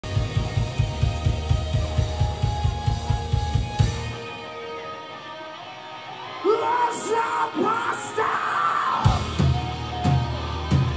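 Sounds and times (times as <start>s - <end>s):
rock band playing live: 0.0s - 10.9s.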